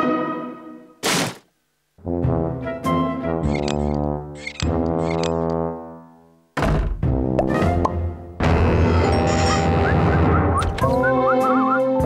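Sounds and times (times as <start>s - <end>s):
loud thunk sound effect: 1.0s - 1.5s, 6.6s - 7.1s.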